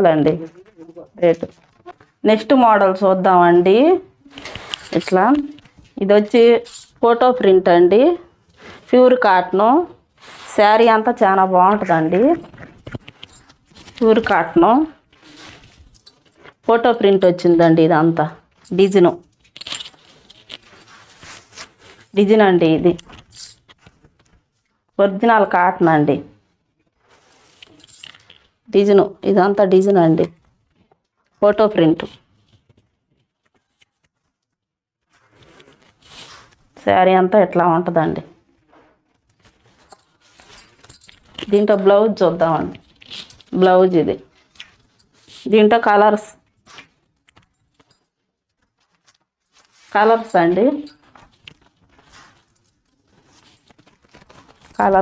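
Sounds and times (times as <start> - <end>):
fabric rustling: 0.1 - 7.1, 8.0 - 24.9, 26.4 - 36.9, 38.1 - 55.0
bangles clinking: 2.4 - 7.2, 10.4 - 22.3, 22.9 - 24.4, 27.2 - 30.5, 39.3 - 55.0
hands smoothing fabric: 10.2 - 11.0.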